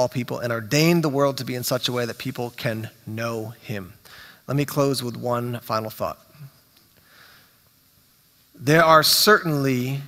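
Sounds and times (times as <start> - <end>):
man speaking: 0.0 - 6.6, 8.6 - 10.0
faint breath through nose: 4.0 - 4.5, 7.0 - 7.6.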